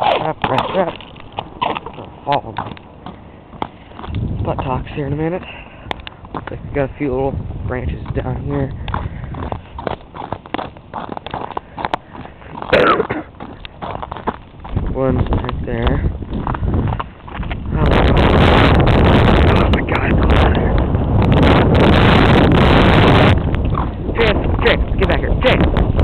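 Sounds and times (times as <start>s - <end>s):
footsteps crunching on snow: 0.0s - 7.1s, 7.8s - 19.2s
wind buffeting microphone: 0.0s - 26.0s.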